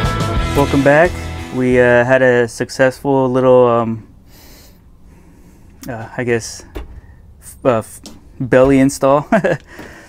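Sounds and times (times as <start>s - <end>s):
man drawing a breath: 4.2s - 5.8s, 9.6s - 10.0s.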